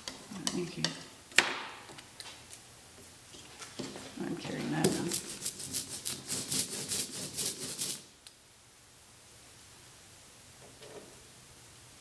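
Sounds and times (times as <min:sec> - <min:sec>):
ink roller sticky swishes: 0:03.4 - 0:08.1.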